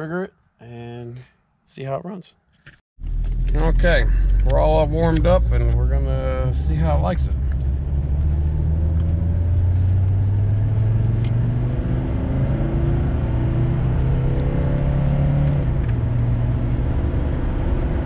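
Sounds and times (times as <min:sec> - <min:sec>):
diesel engine accelerating: 0:03.0 - 0:18.0.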